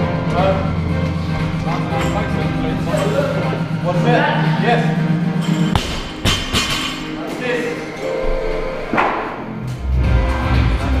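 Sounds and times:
gym music with steady beat: 0:00.0 - 0:11.0.

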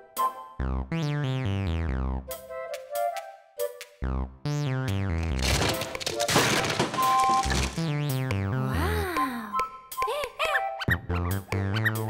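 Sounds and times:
crackling rattle of clicks: 0:05.1 - 0:07.9.

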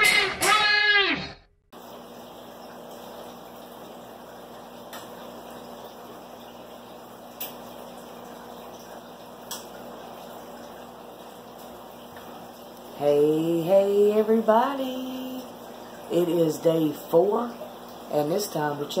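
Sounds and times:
aquarium filters bubbling: 0:01.8 - 0:19.0
low steady hum: 0:01.8 - 0:19.0.

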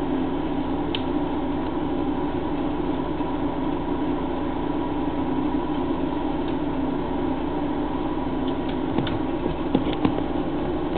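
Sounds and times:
steady mechanical hum: 0:00.0 - 0:10.9.

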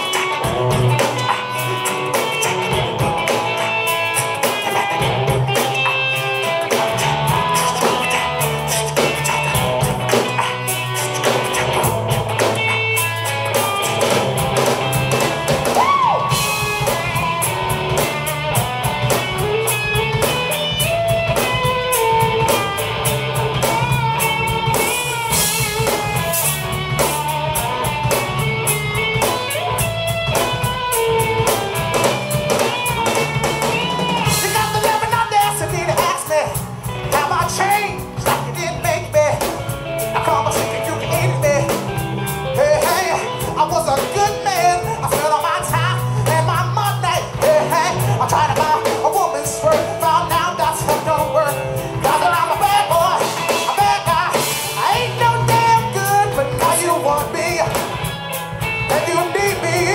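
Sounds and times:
bass guitar: 0:00.0 - 0:59.9
drum kit beat: 0:00.0 - 0:59.9
electric guitar: 0:00.0 - 0:59.9.

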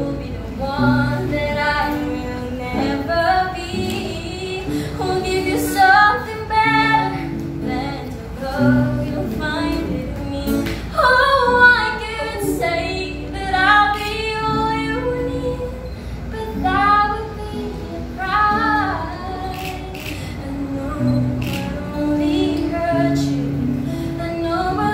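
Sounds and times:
acoustic guitar: 0:00.0 - 0:24.9
young woman singing: 0:00.0 - 0:24.9.

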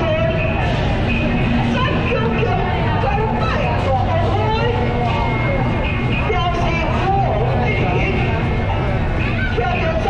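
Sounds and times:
many voices talking: 0:00.0 - 0:10.0
steady low rumble: 0:00.0 - 0:10.0.

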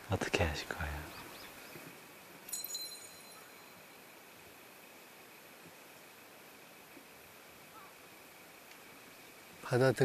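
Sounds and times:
faint steady high tone: 0:02.4 - 0:04.2
bright ringing clink: 0:02.5 - 0:04.0.

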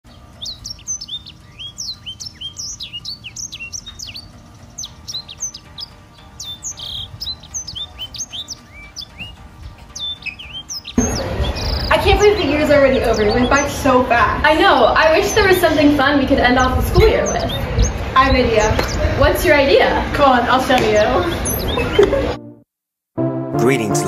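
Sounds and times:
birds chirping: 0:00.1 - 0:22.3
outdoor background noise: 0:00.1 - 0:22.4.

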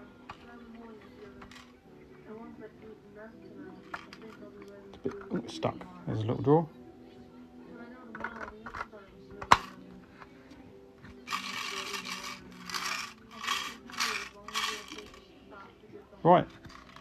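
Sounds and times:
rustling plastic scrapes: 0:11.3 - 0:15.2.

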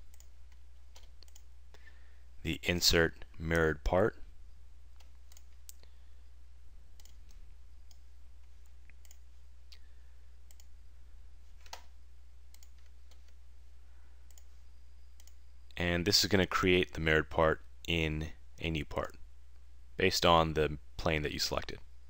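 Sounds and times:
computer mouse clicking: 0:00.0 - 0:01.5, 0:05.0 - 0:05.9, 0:07.0 - 0:09.2, 0:10.5 - 0:10.7, 0:12.5 - 0:13.4, 0:14.3 - 0:14.5, 0:15.2 - 0:15.4
low electrical hum: 0:00.0 - 0:22.0.

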